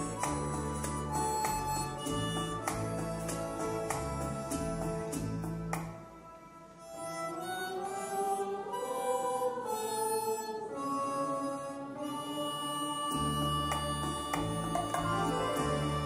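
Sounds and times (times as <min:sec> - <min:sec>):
bass line: 0:00.0 - 0:06.0, 0:13.1 - 0:16.0
backing track: 0:00.0 - 0:08.6, 0:11.4 - 0:16.0
harmonica melody: 0:00.0 - 0:16.0.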